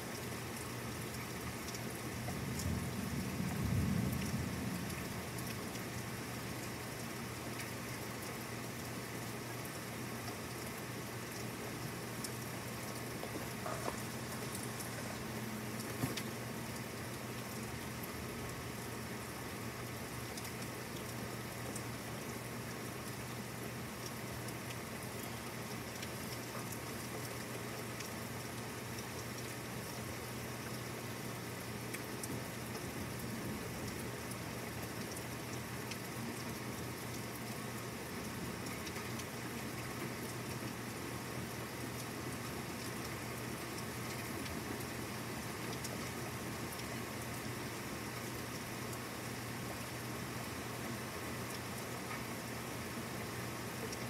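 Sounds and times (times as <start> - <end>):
rain falling: 0.0 - 54.0.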